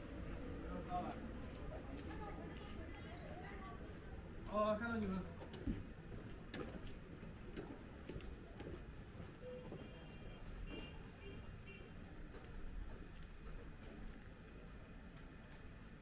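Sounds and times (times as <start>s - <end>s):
low steady street background: 0.0s - 16.0s.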